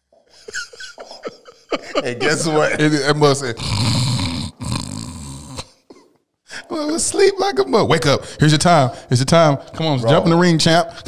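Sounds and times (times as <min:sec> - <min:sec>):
man imitating a snore: 0:03.5 - 0:05.9.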